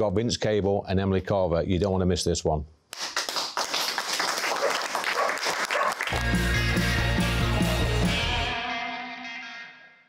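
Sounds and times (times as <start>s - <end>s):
audience applauding: 3.0s - 7.0s.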